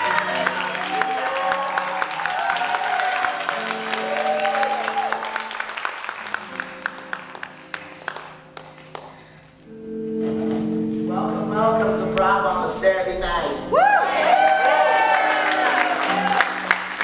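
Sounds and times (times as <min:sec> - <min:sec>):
audience applause: 0:00.0 - 0:09.2, 0:14.2 - 0:17.0
held low instrumental notes: 0:08.7 - 0:13.8.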